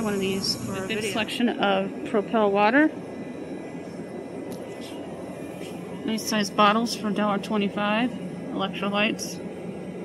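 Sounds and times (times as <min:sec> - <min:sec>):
ventilation hum: 0:00.0 - 0:10.0.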